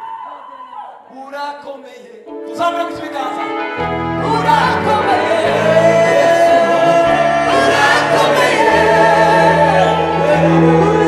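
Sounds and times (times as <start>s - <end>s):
gospel choir singing: 3.8s - 11.0s.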